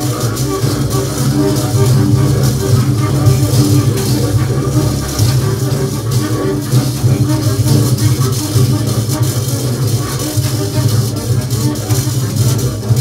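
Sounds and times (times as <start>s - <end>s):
double basses improvising: 0.0s - 13.0s.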